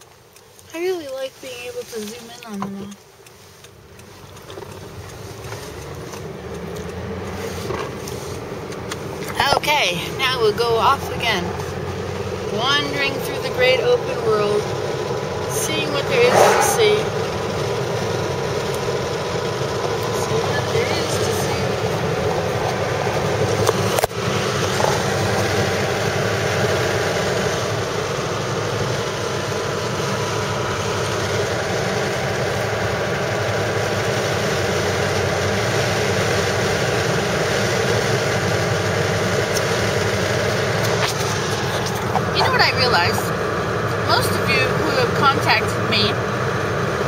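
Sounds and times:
car road and engine noise: 0.0s - 47.0s.

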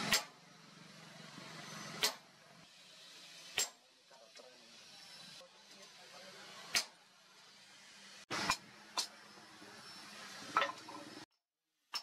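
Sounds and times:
hammer striking metal blade: 0.0s - 0.4s, 2.0s - 2.2s, 3.5s - 3.8s, 8.4s - 9.1s.

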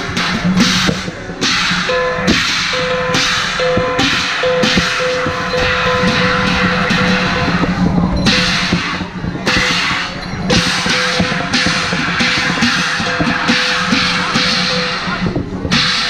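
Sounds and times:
cymbal crashes: 0.0s - 16.0s
drum strokes: 0.0s - 16.0s
ringing tone: 1.7s - 15.4s.

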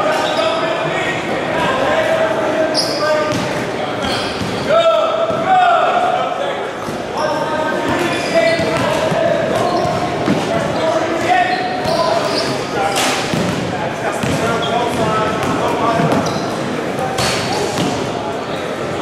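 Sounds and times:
sneakers squeaking: 0.0s - 0.8s, 2.5s - 5.5s, 6.8s - 19.0s.

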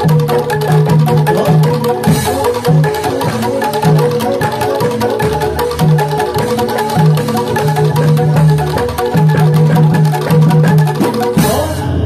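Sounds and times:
hand drum: 0.0s - 12.0s
metal mallet instruments ringing: 0.0s - 12.0s.

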